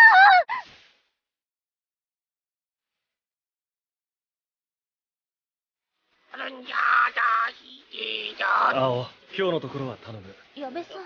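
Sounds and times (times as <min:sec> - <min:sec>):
girl short cry: 0:00.0 - 0:00.7.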